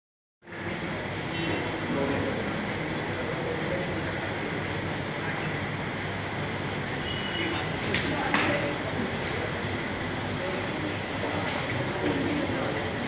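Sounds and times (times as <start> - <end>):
faint murmuring voices: 0.5 - 13.0.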